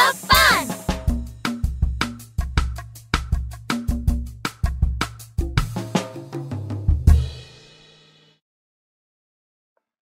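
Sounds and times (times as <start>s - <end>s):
drum-backed children's chant music: 0.0s - 1.2s.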